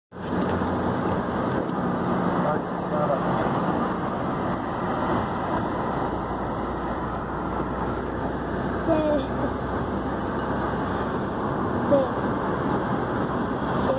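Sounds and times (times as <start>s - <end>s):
low engine hum: 0.1s - 13.9s
wind and road noise rushing: 0.1s - 13.9s.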